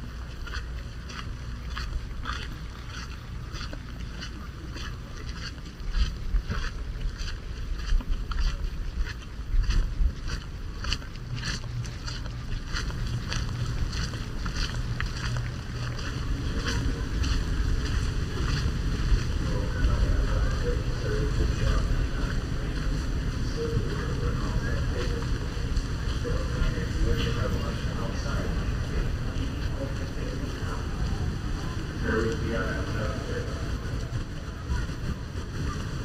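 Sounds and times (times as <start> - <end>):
low rumble: 0.0 - 36.0
walking footsteps: 0.0 - 36.0
wind buffeting microphone: 0.0 - 36.0.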